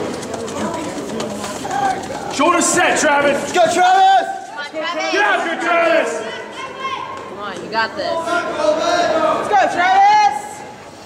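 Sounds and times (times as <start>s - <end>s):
people talking and calling out: 0.0s - 11.0s
cheering shouts: 3.6s - 7.3s.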